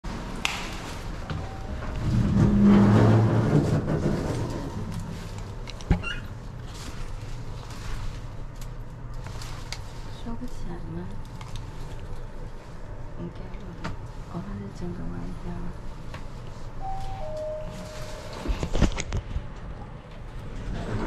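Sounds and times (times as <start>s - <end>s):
elevator rumble and hum: 0.0s - 21.0s.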